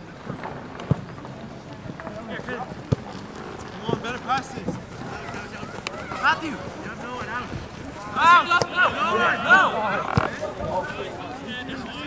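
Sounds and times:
players shouting: 0:05.1 - 0:12.0.

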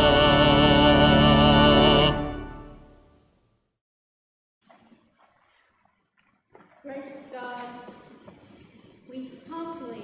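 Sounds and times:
woman speaking into microphone: 0:06.9 - 0:08.0, 0:09.1 - 0:10.0.

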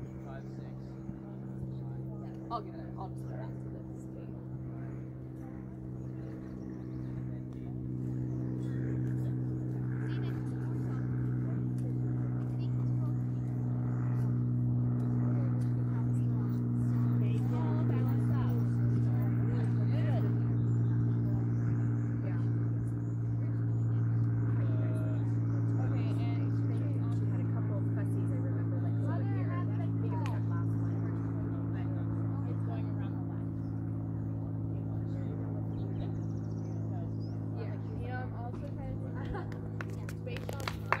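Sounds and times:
birds chirping: 0:00.0 - 0:11.4, 0:12.2 - 0:27.9, 0:29.9 - 0:41.0
distant voices: 0:00.0 - 0:41.0
low mechanical hum: 0:00.0 - 0:41.0.

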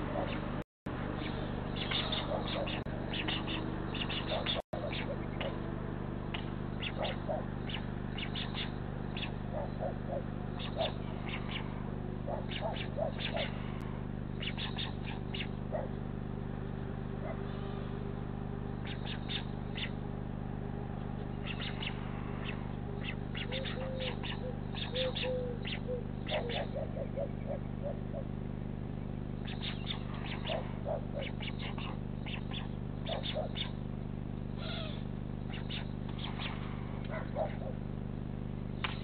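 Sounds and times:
low electrical hum: 0:00.0 - 0:39.0
small birds chirping: 0:00.0 - 0:39.0
low short bird calls: 0:01.2 - 0:05.6, 0:06.3 - 0:20.2, 0:21.2 - 0:39.0.

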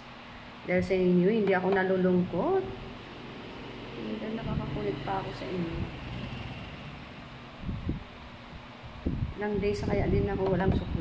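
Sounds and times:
low rumble: 0:02.3 - 0:08.2.

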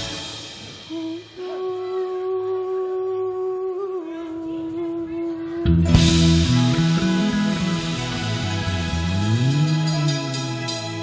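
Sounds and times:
cymbals ringing: 0:00.0 - 0:01.6, 0:05.9 - 0:11.0
steady held note: 0:04.7 - 0:11.0
live band final chord: 0:05.7 - 0:11.0.

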